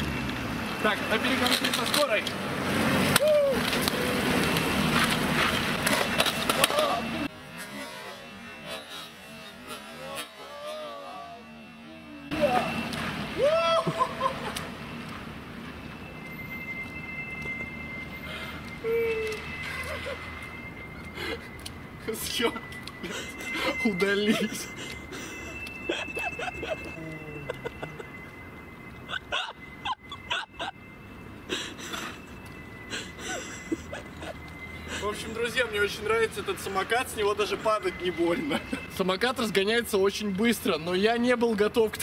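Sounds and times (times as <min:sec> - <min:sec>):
scooter wheels rolling on wet asphalt: 0:00.0 - 0:07.3
steady high tone: 0:00.0 - 0:42.0.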